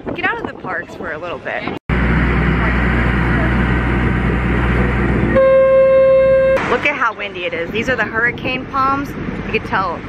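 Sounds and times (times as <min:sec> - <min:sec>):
wind noise: 0:00.0 - 0:10.0
boat engine running: 0:01.9 - 0:10.0
horn long steady blast: 0:04.7 - 0:06.6.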